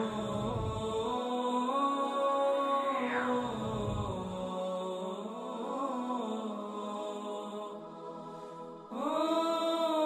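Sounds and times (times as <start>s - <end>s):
low rumble: 0.0s - 1.2s, 2.8s - 4.4s
wordless vocal chant music: 0.0s - 10.0s
falling swoosh: 2.7s - 4.4s.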